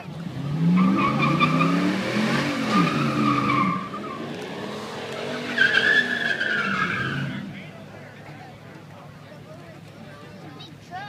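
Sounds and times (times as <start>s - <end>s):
engine revving: 0.0s - 7.4s
tires squealing: 0.0s - 7.7s.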